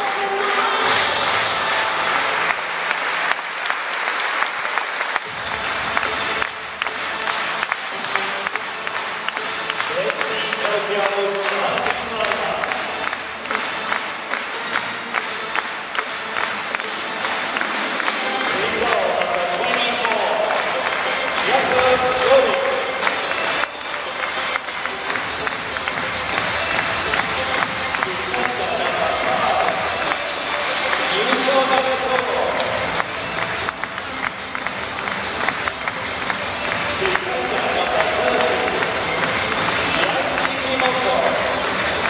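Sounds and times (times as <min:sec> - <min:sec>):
voice over loudspeakers: 0:00.0 - 0:01.3, 0:09.8 - 0:13.6, 0:18.2 - 0:24.6, 0:27.0 - 0:33.6, 0:36.6 - 0:42.0
music: 0:00.0 - 0:42.0
people clapping: 0:00.0 - 0:42.0
stadium crowd noise: 0:00.0 - 0:42.0.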